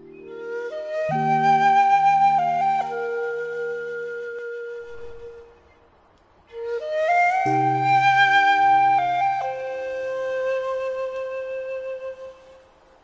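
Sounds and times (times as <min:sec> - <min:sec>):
flute playing slow melody: 0:00.0 - 0:05.8, 0:06.5 - 0:13.0
low sustained accompaniment: 0:00.0 - 0:05.8, 0:06.5 - 0:12.7.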